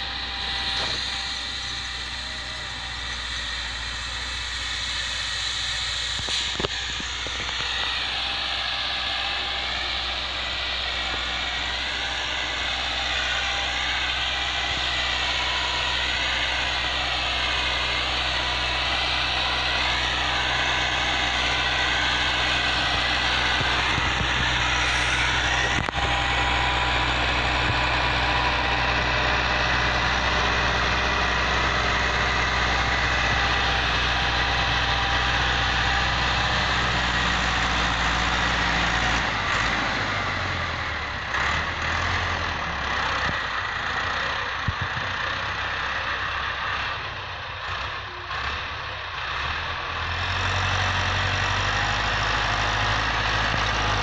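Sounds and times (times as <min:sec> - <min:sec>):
tractor diesel engine running: 0:00.0 - 0:54.0.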